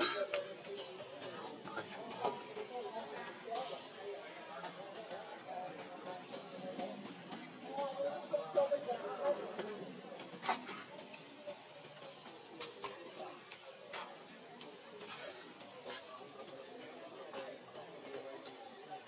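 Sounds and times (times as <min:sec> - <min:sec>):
indistinct voices talking: 0:00.0 - 0:19.0.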